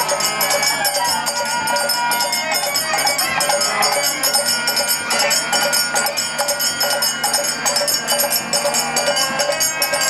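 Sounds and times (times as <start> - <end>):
hand cymbals struck rhythmically: 0.0 - 10.0.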